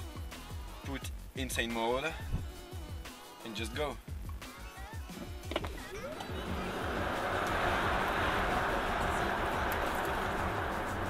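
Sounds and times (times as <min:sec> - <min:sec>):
background music with steady beat: 0:00.0 - 0:11.0
car cabin noise accelerating: 0:05.6 - 0:11.0.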